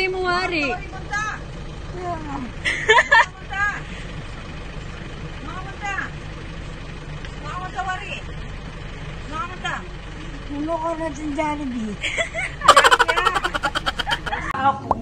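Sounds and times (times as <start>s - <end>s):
people talking: 12.7s - 15.0s.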